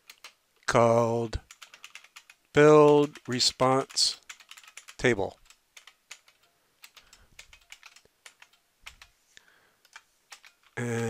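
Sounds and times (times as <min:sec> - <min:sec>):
faint keyboard typing: 0:00.0 - 0:09.2, 0:09.8 - 0:11.0.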